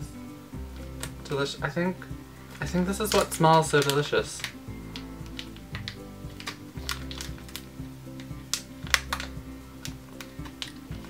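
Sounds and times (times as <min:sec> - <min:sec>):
background music: 0:00.0 - 0:11.0
plastic bag crinkling: 0:02.6 - 0:11.0.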